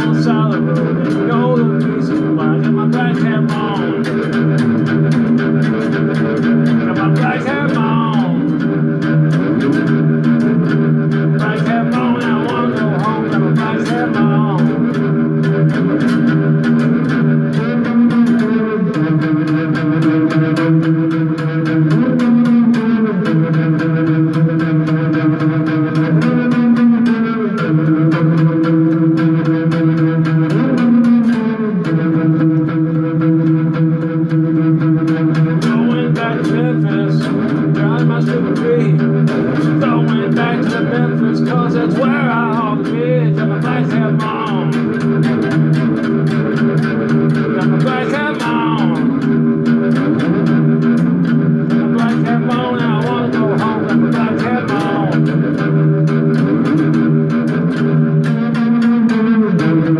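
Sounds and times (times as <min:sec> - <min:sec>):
one-string slide instrument blues riff: 0:00.0 - 0:59.9.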